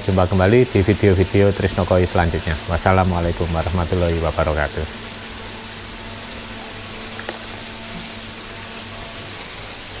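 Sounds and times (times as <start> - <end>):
faint steady hum: 0.0 - 10.0
water splashing into pond: 6.8 - 8.5.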